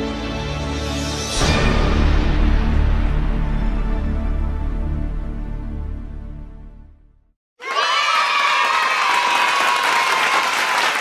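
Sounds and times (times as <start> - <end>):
music: 0.0 - 7.4
crowd cheering and shouting: 7.6 - 11.0.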